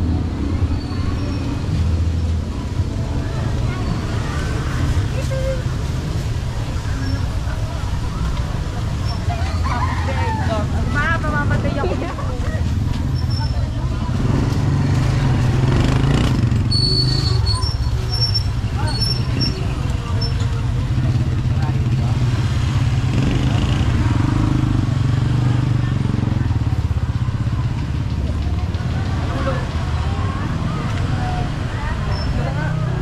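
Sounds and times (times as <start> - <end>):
motorcycle engines rumbling: 0.0 - 33.0
passers-by talking: 0.0 - 33.0.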